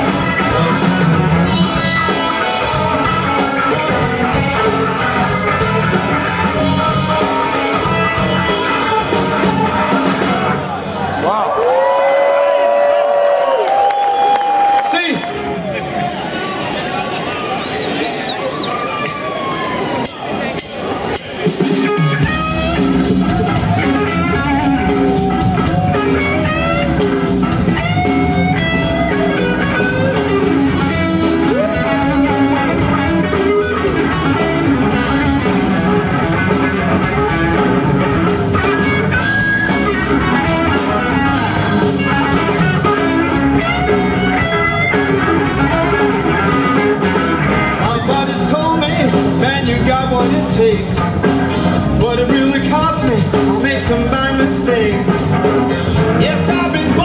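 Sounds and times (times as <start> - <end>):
lead guitar bent notes: 0.0 - 10.9, 19.9 - 57.0
blues-rock band playing: 0.0 - 11.8, 18.7 - 57.0.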